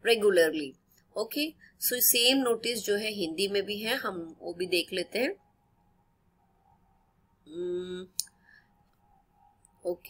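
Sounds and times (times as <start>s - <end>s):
person saying uhh: 7.5s - 8.2s.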